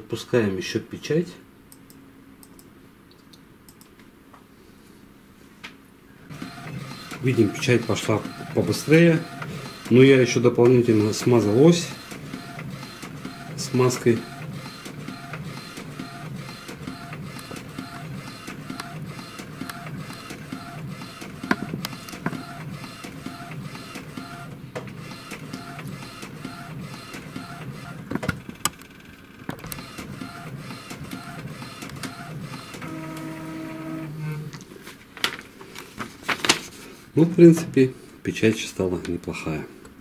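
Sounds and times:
printer clicks: 6.3 - 28.8, 29.5 - 33.3
printer carriage running back and forth: 6.3 - 34.5
printer whine: 6.3 - 34.5.

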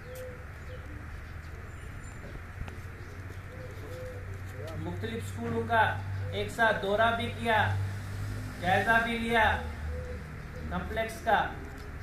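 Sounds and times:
bird giving short low calls: 9.6 - 10.9.

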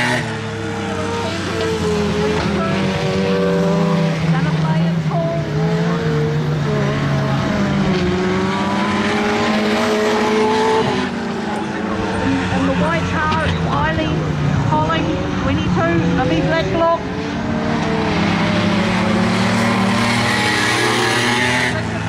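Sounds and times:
race car engines droning: 0.0 - 22.0.

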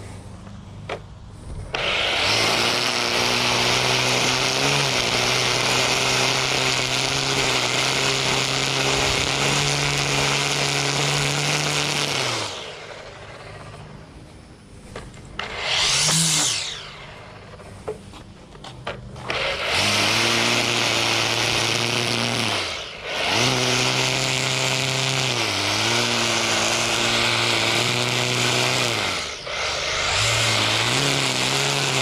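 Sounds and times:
string trimmer cutting grass: 0.0 - 32.0.

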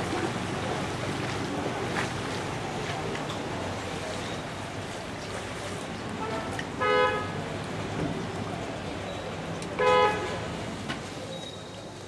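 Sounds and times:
steady background noise: 0.0 - 12.0
vehicle horn honking: 6.8 - 7.2, 9.8 - 10.4.

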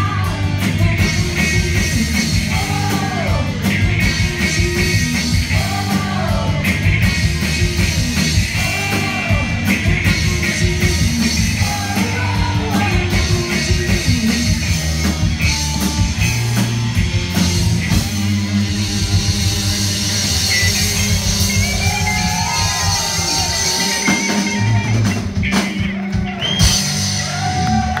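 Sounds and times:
distorted electric guitar: 0.0 - 28.0
drum kit: 0.0 - 28.0.

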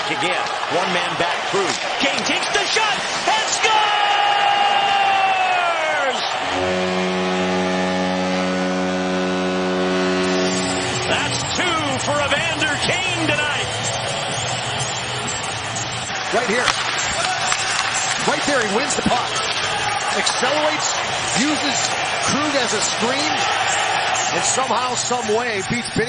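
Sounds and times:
arena goal horn: 5.7 - 13.7
high tone sliding down: 6.5 - 14.8.

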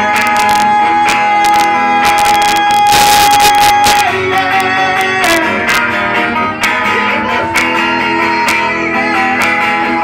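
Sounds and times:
acoustic guitar strummed: 0.0 - 10.0
man singing high note: 0.0 - 10.0.

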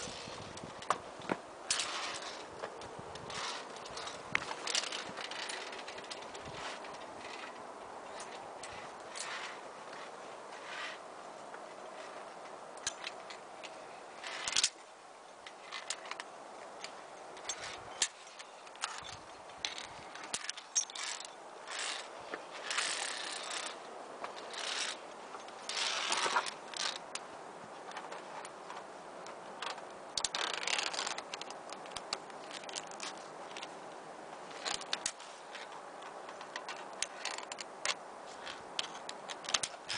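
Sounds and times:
carabiners clicking on cable: 0.0 - 14.8, 15.4 - 33.8, 34.5 - 39.9
carabiners scraping on cable: 0.0 - 39.9.

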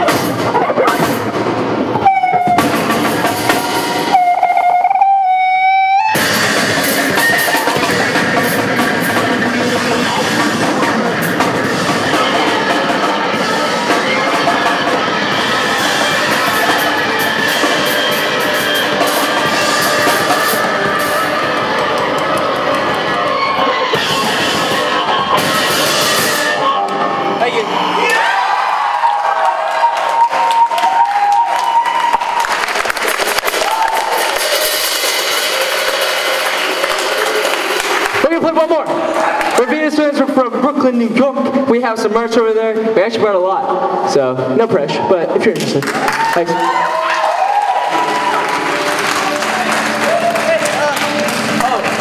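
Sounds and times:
live rock band playing: 0.0 - 28.0, 29.7 - 39.6, 46.2 - 52.0.

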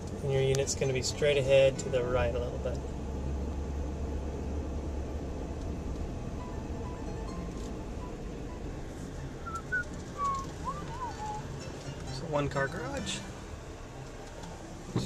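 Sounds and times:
car engine and road rumble: 0.0 - 15.0
faint whistle-like notes: 9.4 - 11.5.

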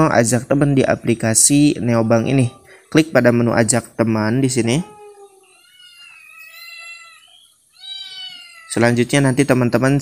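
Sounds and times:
high-pitched cry: 4.6 - 8.8.

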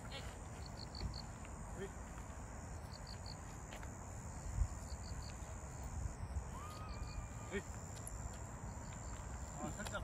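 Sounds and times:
high-pitched insect trill: 0.0 - 10.0
insects chirping: 0.0 - 10.0.

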